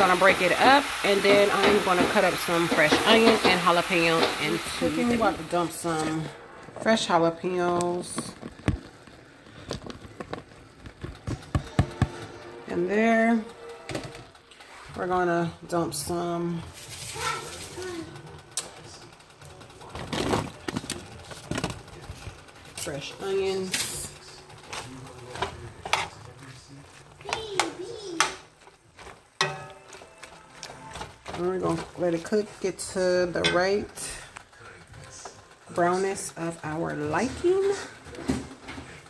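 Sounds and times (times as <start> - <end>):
metal spoon scraping a skillet: 0.5 - 6.3, 24.7 - 26.4, 29.4 - 34.4.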